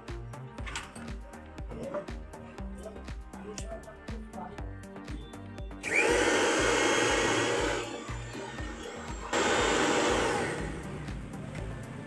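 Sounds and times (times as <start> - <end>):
music with steady beat: 0.0 - 12.0
mixer grinder motor whine: 5.8 - 11.7.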